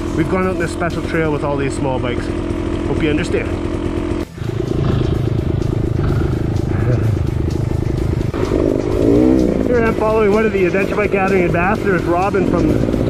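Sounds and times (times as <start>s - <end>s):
dirt bike engine revving: 0.0s - 13.0s.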